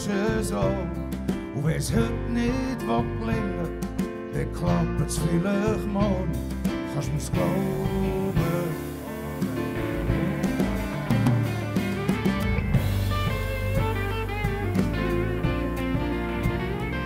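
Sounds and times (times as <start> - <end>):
blues band playing: 0.0 - 17.0.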